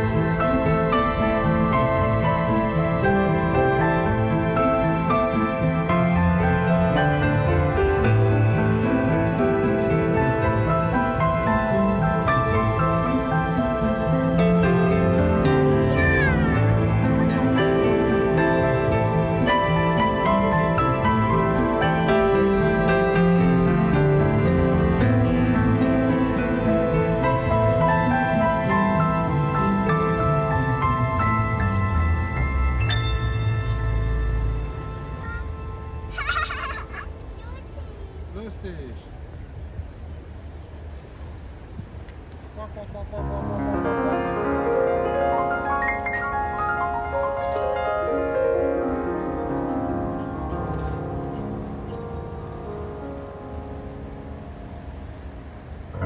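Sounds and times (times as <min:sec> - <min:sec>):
soft instrumental music: 0:00.0 - 0:37.6, 0:43.2 - 0:56.0.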